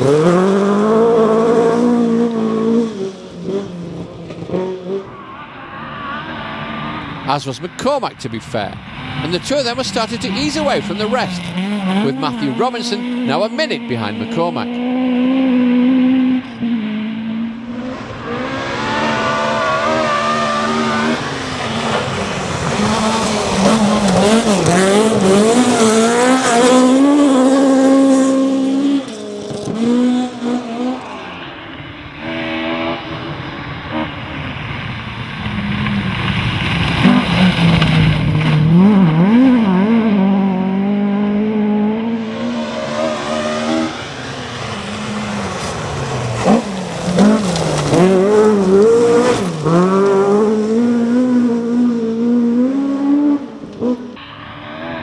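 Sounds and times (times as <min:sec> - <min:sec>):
rally car engines revving: 0:00.0 - 0:55.0.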